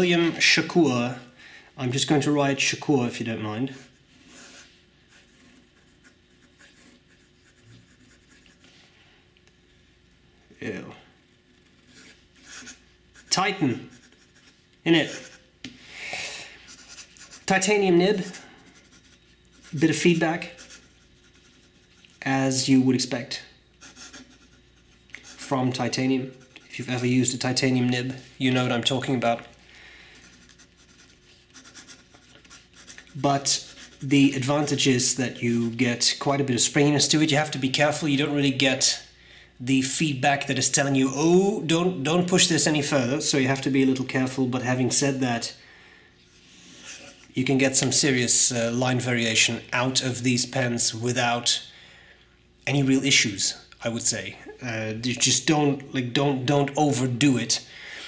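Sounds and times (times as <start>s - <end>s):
fountain pen scratching on paper: 11.8s - 15.4s, 16.7s - 17.5s, 18.2s - 22.2s, 23.8s - 25.5s, 30.3s - 34.1s.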